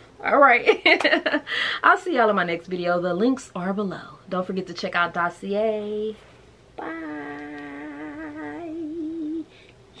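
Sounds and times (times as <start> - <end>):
woman humming: 6.8 - 9.5.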